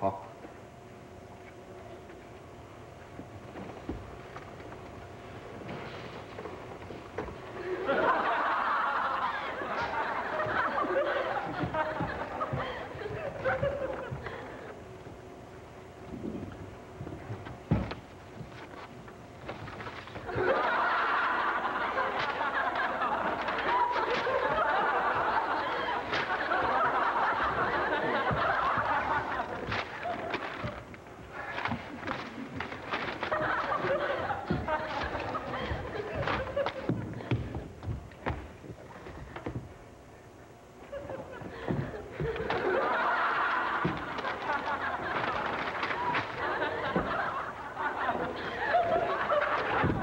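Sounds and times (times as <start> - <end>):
audience laughter: 7.5 - 14.8, 20.1 - 37.6, 40.8 - 50.0.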